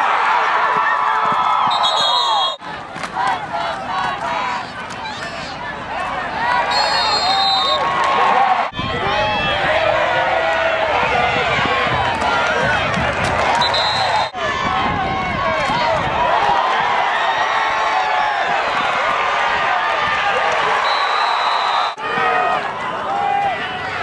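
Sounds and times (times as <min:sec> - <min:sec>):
crowd cheering and shouting: 0:00.0 - 0:24.0
shrill whistle blast: 0:01.7 - 0:02.6, 0:06.7 - 0:07.8, 0:13.6 - 0:14.3, 0:20.8 - 0:22.0.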